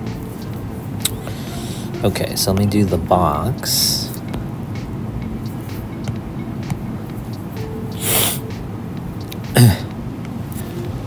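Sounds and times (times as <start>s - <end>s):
stylus tapping tablet screen: 0.0s - 11.0s.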